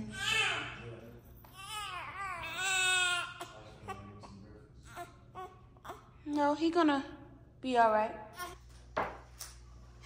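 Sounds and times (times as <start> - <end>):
baby crying: 1.5 - 6.1.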